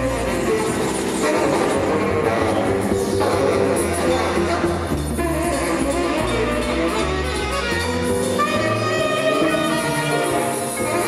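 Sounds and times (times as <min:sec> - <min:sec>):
double bass: 0:00.0 - 0:11.0
saxophone: 0:00.0 - 0:11.0
trombone: 0:00.0 - 0:11.0.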